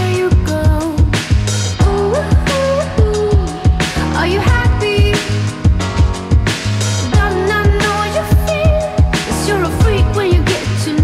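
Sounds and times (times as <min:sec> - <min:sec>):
song with drum beat and bass: 0:00.0 - 0:11.0.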